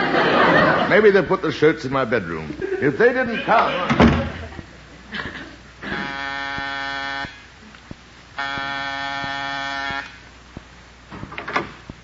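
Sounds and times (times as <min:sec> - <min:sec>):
door buzzer: 0:05.8 - 0:07.4, 0:08.4 - 0:10.2.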